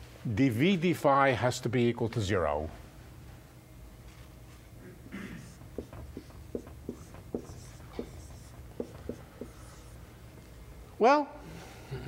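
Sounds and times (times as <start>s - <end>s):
chalk tapping and scratching: 5.4s - 10.0s.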